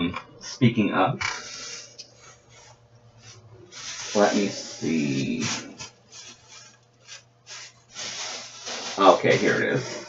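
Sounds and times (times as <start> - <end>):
rustling and rubbing: 1.3 - 10.0.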